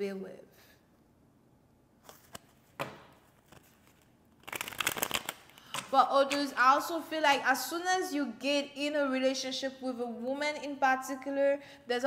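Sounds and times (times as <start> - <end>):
cards riffled by hand: 2.0 - 5.9.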